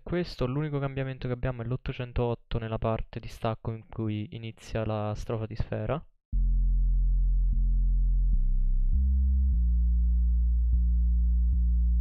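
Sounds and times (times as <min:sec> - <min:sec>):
deep bass line: 0:06.3 - 0:12.0.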